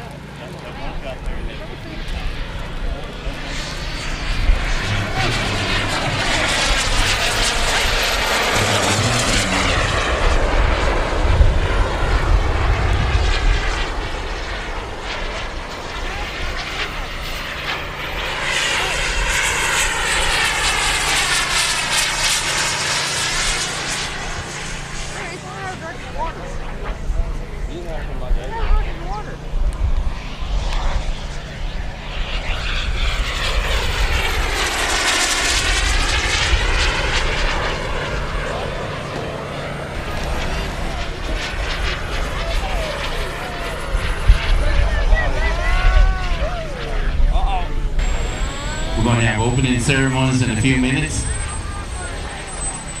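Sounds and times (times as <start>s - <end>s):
model jet whine: 0.0s - 53.0s.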